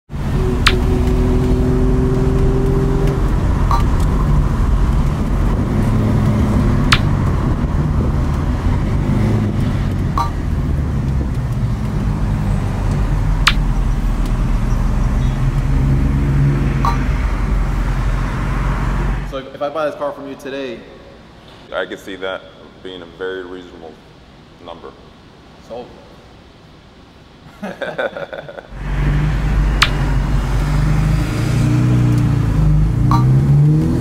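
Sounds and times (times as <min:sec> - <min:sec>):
car engine running: 0:00.1 - 0:18.2
road noise: 0:00.1 - 0:19.6, 0:28.4 - 0:34.0
sharp clicks: 0:02.6 - 0:04.1, 0:06.2 - 0:07.4, 0:12.9 - 0:14.4.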